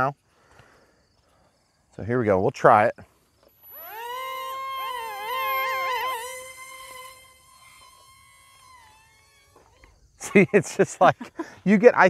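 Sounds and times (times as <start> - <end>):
electric motors and propellers whining: 3.4 - 10.5.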